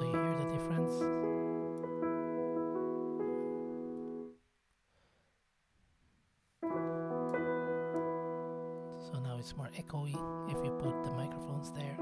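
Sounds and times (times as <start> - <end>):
echoey piano chord: 0.0 - 4.3, 6.6 - 12.0
piano chord: 0.0 - 4.4, 6.6 - 12.0.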